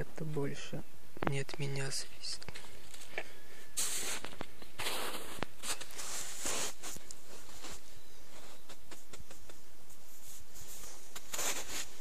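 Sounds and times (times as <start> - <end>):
footsteps crunching over snow: 2.5 - 12.0.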